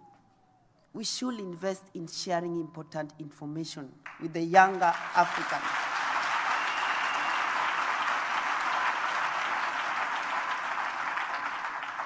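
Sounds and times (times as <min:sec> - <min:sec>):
audience applauding: 0:04.1 - 0:12.0.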